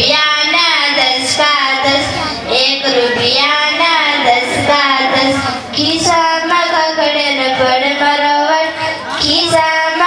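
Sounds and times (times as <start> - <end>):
child singing: 0.0 - 10.0.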